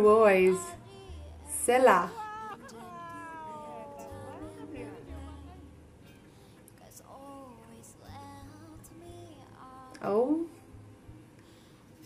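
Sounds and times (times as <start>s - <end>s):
woman singing long sliding note: 0.0s - 5.8s.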